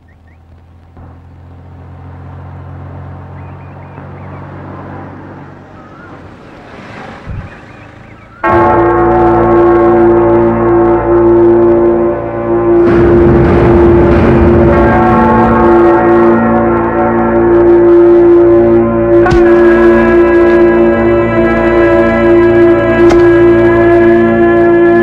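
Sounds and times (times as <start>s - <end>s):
bird chirps: 0.0s - 1.8s, 3.2s - 4.6s, 5.5s - 8.5s
car engine running: 0.0s - 24.8s
loud sustained bell tones: 8.3s - 25.0s.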